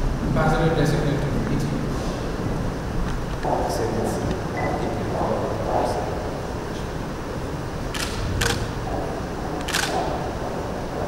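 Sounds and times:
low room hum: 0.0s - 11.0s
camera shutters clicking: 7.9s - 8.7s, 9.6s - 10.2s.

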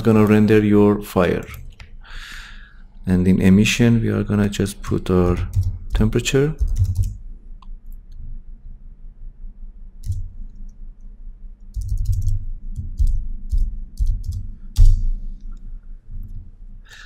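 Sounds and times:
computer mouse clicking: 10.0s - 10.8s, 11.7s - 15.6s.

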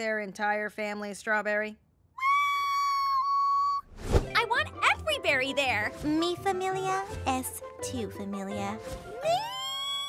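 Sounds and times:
cartoon girl squealing: 2.2s - 3.9s, 9.2s - 10.0s.

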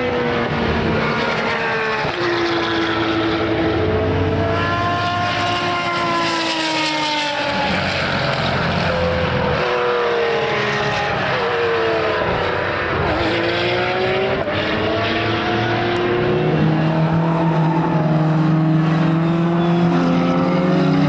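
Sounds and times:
racing car engine passing at speed: 0.0s - 21.0s.

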